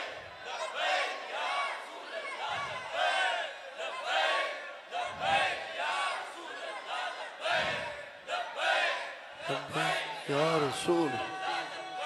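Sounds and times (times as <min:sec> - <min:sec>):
crowd chanting in unison: 0:00.0 - 0:12.0.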